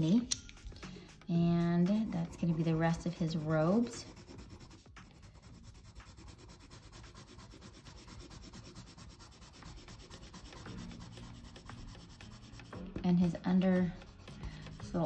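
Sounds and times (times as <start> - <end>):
pencil scratching on paper: 1.7 - 15.0.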